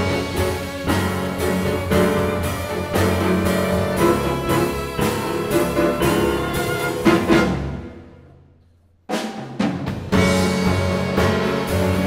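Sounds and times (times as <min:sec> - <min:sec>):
piano and strings playing tango: 0:00.0 - 0:08.1, 0:10.1 - 0:12.0.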